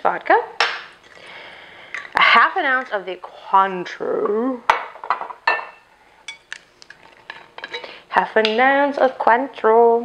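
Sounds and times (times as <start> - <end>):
glass bottles clinking: 4.7 - 6.5.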